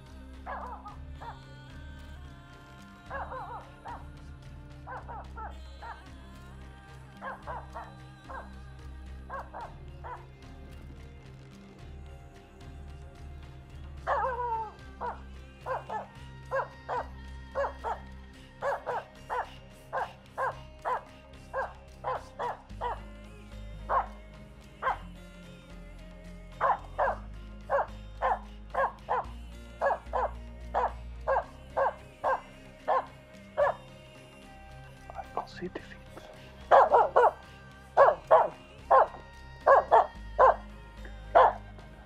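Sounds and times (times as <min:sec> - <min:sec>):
dog barking: 0:00.5 - 0:01.4, 0:04.9 - 0:05.2, 0:07.2 - 0:08.5, 0:09.3 - 0:10.2, 0:14.1 - 0:18.0, 0:18.6 - 0:23.0, 0:23.9 - 0:24.1, 0:24.8 - 0:25.0, 0:26.6 - 0:29.2, 0:29.8 - 0:33.8, 0:36.7 - 0:37.4, 0:38.0 - 0:40.6, 0:41.4 - 0:41.6.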